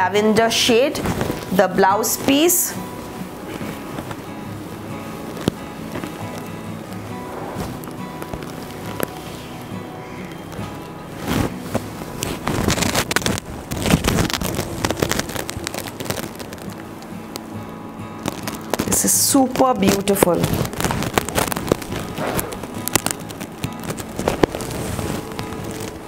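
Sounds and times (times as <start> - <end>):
background music with held notes: 0.0 - 26.0
silk fabric rustling: 0.7 - 26.0.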